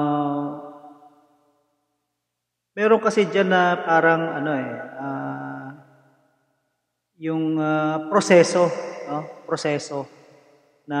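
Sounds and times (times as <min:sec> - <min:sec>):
man's drawn-out hesitation sound: 0:02.8 - 0:05.8, 0:07.2 - 0:10.0.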